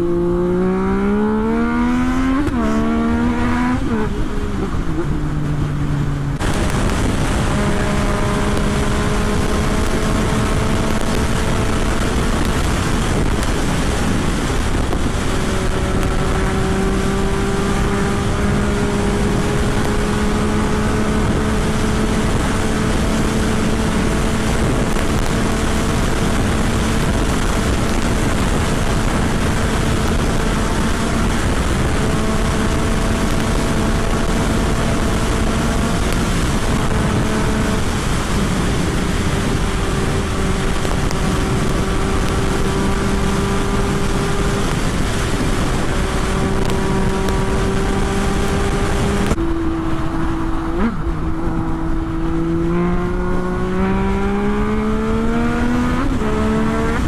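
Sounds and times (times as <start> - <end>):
motorcycle engine at speed: 0.0 - 57.0
wind rush on microphone: 0.0 - 57.0.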